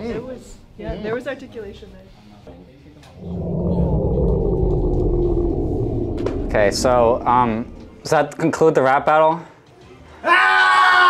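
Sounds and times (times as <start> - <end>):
faint gliding tone: 3.2 - 8.1
low rumbling drone: 3.2 - 8.2.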